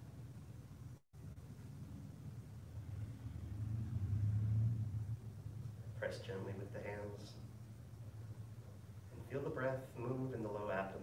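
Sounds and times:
low rumble: 1.3s - 9.2s.

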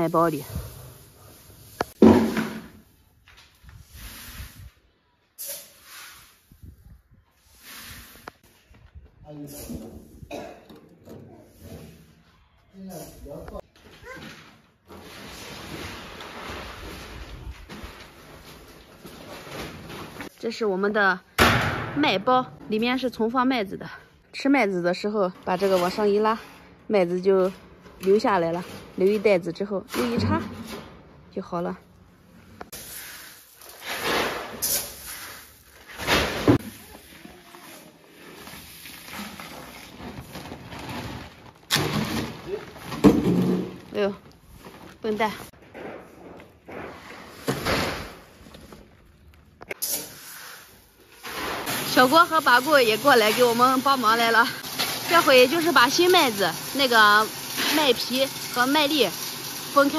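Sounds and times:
person clearing throat: 10.3s - 10.8s
metal scoop in grain: 32.8s - 36.0s
grain pouring: 49.8s - 59.9s.

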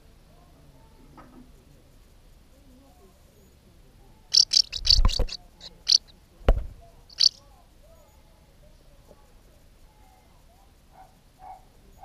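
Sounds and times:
house martin chirps: 4.3s - 6.1s, 7.0s - 7.4s.

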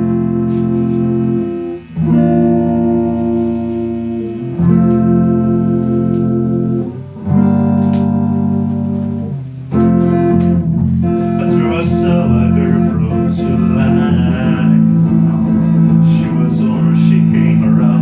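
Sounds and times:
guitar and bass guitar playing: 0.0s - 18.0s.

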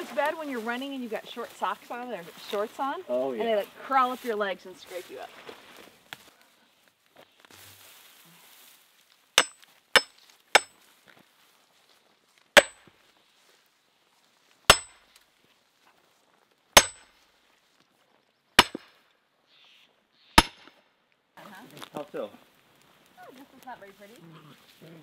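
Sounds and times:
sledgehammer striking steel wedge: 9.4s - 10.7s, 12.6s - 12.9s, 14.7s - 15.0s, 16.8s - 17.1s, 18.6s - 18.9s, 20.4s - 20.7s.

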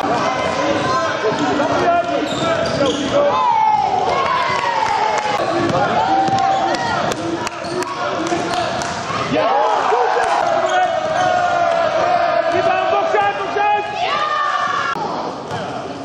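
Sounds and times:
players' voices calling: 0.0s - 14.9s
sneakers squealing on floor: 0.1s - 4.0s, 5.3s - 9.4s, 10.2s - 12.7s
basketball bouncing on court: 5.4s - 9.0s.

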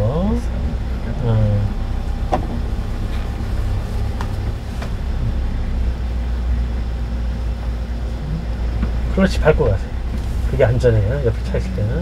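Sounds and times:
truck engine and road hum: 0.0s - 12.0s.

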